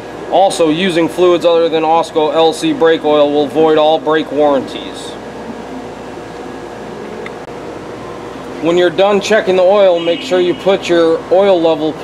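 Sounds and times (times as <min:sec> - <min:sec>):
ventilation fan hiss and hum: 0:00.0 - 0:12.0.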